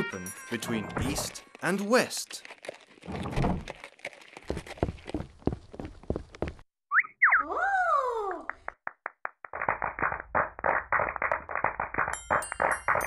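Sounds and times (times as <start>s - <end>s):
high twinkling chimes: 12.2s - 13.0s.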